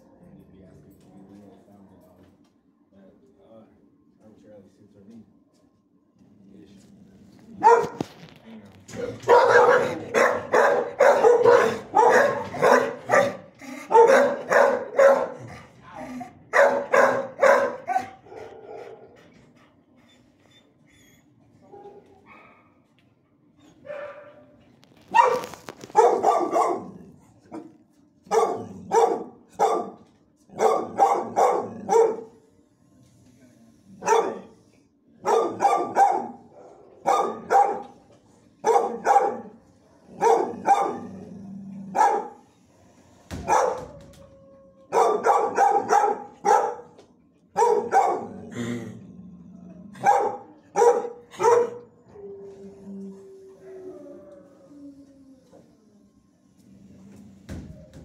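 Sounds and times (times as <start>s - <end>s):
dogs barking in kennels: 7.6s - 8.2s, 8.9s - 15.7s, 16.4s - 19.5s, 21.6s - 22.9s, 23.8s - 32.4s, 34.0s - 34.5s, 35.2s - 42.4s, 43.4s - 48.6s, 49.8s - 54.6s.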